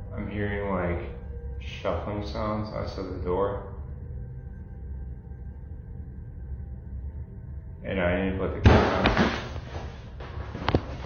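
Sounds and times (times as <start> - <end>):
ambient drone music: 0.0 - 11.0.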